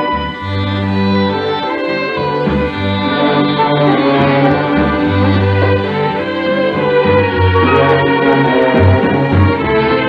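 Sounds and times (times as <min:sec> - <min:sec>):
orchestra playing slow passage: 0:00.0 - 0:10.0.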